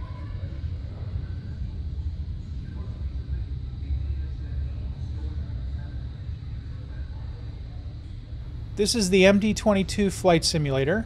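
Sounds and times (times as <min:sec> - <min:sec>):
faint distant voices talking: 0:00.0 - 0:11.0
low room rumble: 0:00.0 - 0:11.0.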